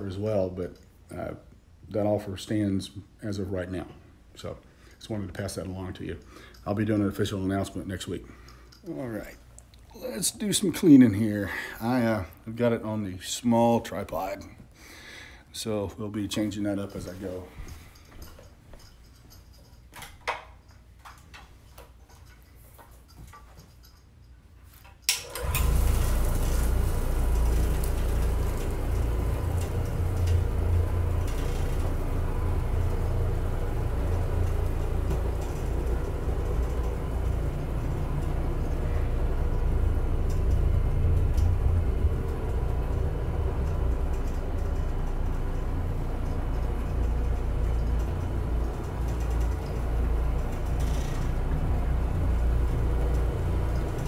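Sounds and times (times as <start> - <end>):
floor machine humming: 25.2 - 54.0.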